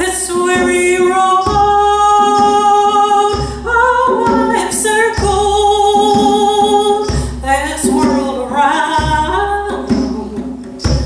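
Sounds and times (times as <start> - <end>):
woman singing long notes: 0.0 - 10.6
hand drum beating slowly: 0.0 - 11.0.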